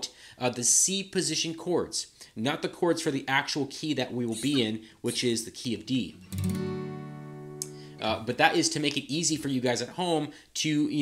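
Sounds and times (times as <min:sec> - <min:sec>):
acoustic guitar chord ringing: 0:06.2 - 0:08.3.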